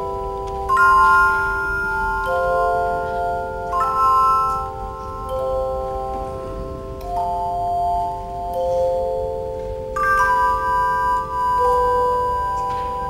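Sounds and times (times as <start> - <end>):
handchimes ringing in chords: 0.0 - 13.0.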